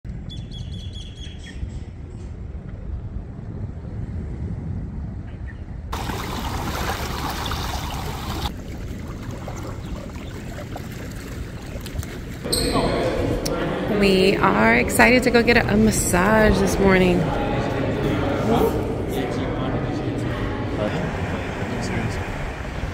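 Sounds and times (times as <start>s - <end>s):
birds chirping: 5.4s - 8.5s, 9.2s - 12.8s
sea water splashing on rocks: 6.0s - 12.5s
voices: 12.5s - 22.9s.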